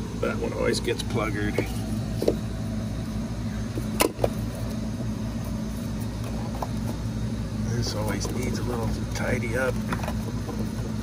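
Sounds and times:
refrigeration equipment humming: 0.0s - 11.0s.

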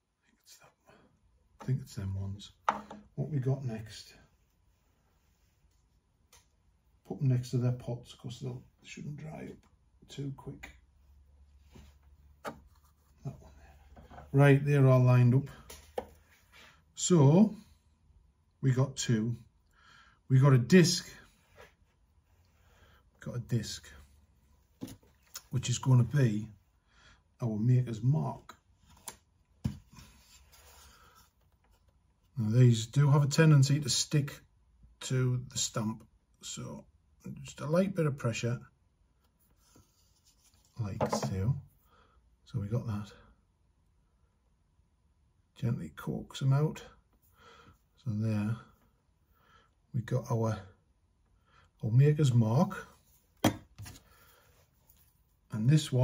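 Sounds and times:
wooden board knocking: 2.6s - 3.0s, 53.4s - 53.8s.

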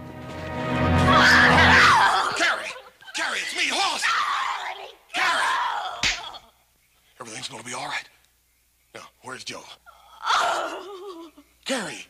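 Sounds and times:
background music: 0.0s - 2.4s
woman screaming and crying out: 1.0s - 2.9s.

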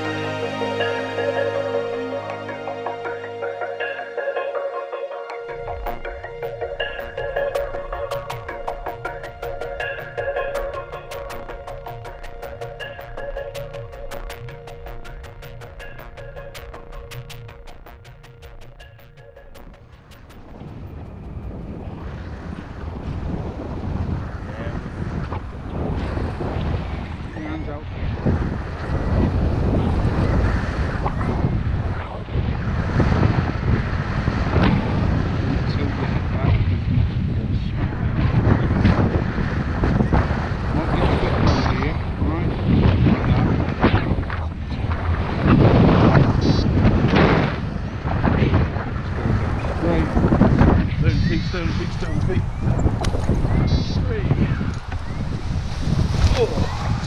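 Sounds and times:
wind buffeting microphone: 5.4s - 57.0s.

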